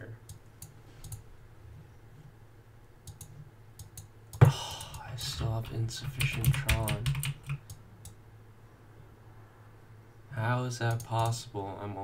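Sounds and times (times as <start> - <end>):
low steady hum: 0.0 - 12.0
faint mouse clicks: 0.2 - 1.3, 3.0 - 5.0.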